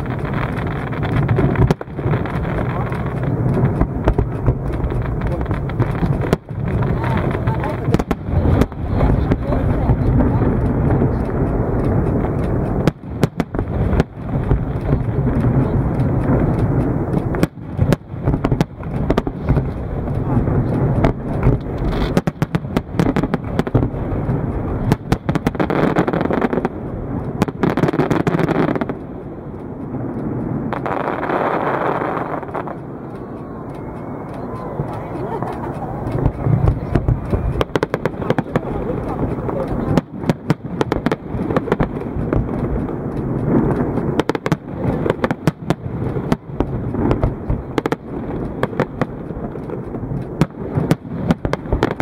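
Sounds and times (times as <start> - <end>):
fireworks bursts banging: 0.0 - 52.0
low rumble: 0.0 - 52.0.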